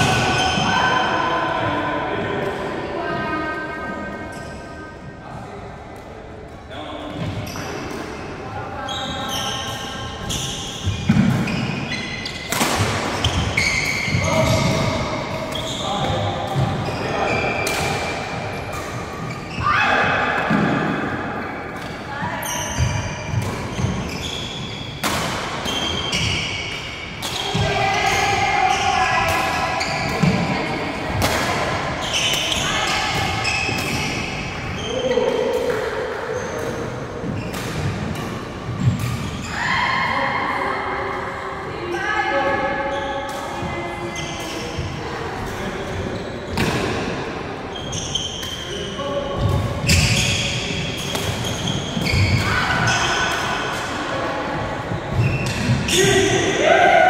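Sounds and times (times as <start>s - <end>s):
shoe squeaks on court floor: 8.8s - 12.6s, 13.2s - 19.8s, 22.3s - 25.0s, 32.0s - 35.3s, 45.5s - 46.7s, 47.7s - 53.5s, 55.1s - 56.2s
rackets striking shuttlecock: 49.4s - 53.9s.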